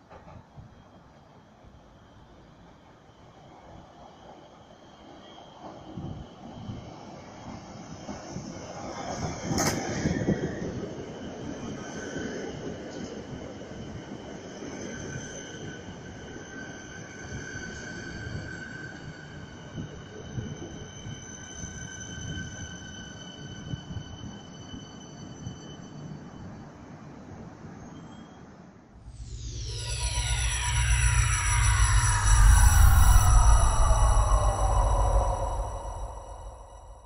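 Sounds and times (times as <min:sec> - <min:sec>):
high-pitched brake squeal: 0:14.8 - 0:27.0, 0:27.7 - 0:37.0
train rumble: 0:29.0 - 0:37.0.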